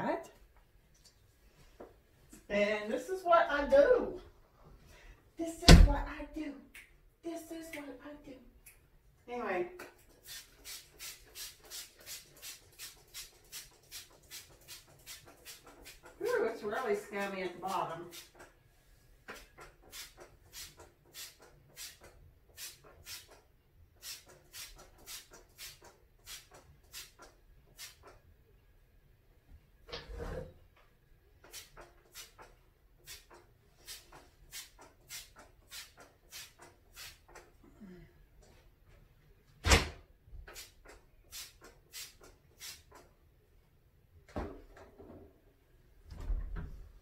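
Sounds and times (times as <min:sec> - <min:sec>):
spray bottle hissing sprays: 0:10.1 - 0:16.1, 0:18.1 - 0:18.5, 0:19.3 - 0:23.4, 0:24.0 - 0:28.1, 0:31.4 - 0:37.2, 0:40.5 - 0:43.0.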